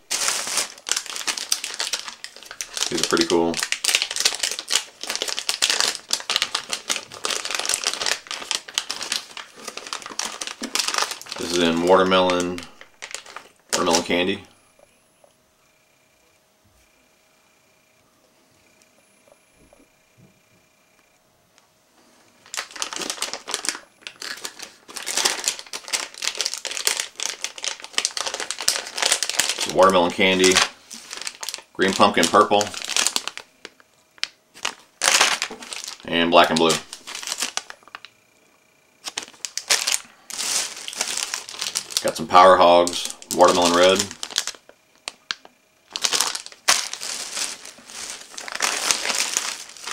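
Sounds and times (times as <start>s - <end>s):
plastic package crinkling: 0.0s - 14.3s, 22.4s - 38.1s, 39.0s - 49.9s.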